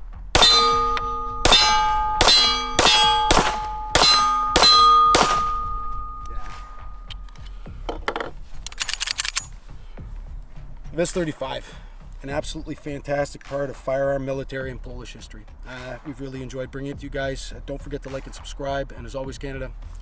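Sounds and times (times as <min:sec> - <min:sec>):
pistol shots: 0:00.4 - 0:06.0
metallic ringing: 0:00.4 - 0:07.4.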